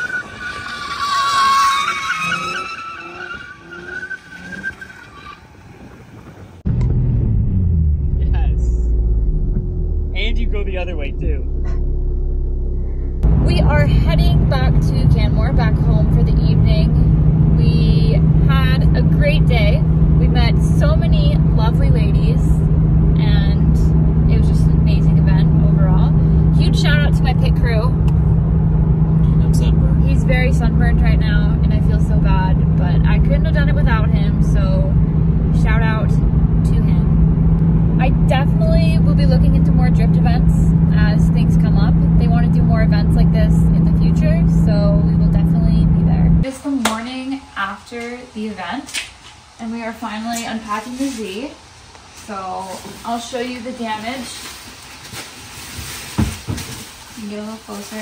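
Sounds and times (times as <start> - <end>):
car road and engine drone: 0.0 - 58.0
woman talking: 13.4 - 17.0, 17.6 - 22.6, 23.2 - 28.0, 29.3 - 37.1, 38.0 - 49.0, 49.6 - 51.6, 52.2 - 54.5, 57.2 - 58.0.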